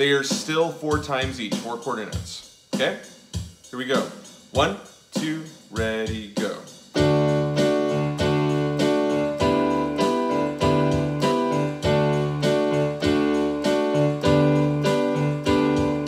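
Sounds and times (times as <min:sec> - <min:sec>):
lower keyboard accompaniment: 0:00.0 - 0:16.0
electronic keyboard playing a scale: 0:06.9 - 0:16.0.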